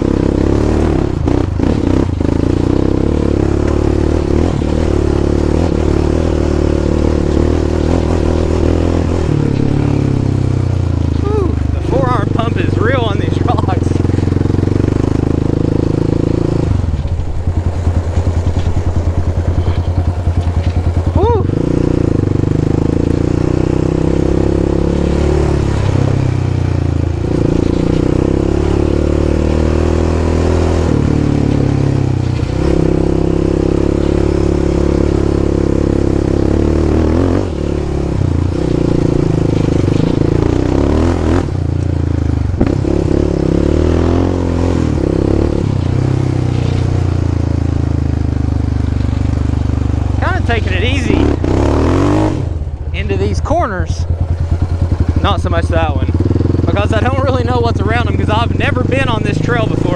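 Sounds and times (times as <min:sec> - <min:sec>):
atv engine revving: 0:00.0 - 0:59.9.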